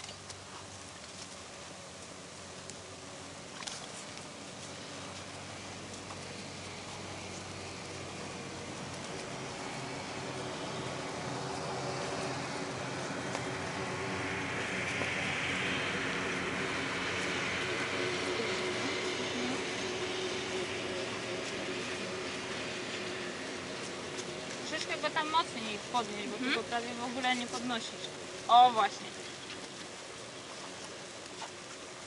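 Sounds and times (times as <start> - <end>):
distant vehicle passing: 1.8 - 32.0.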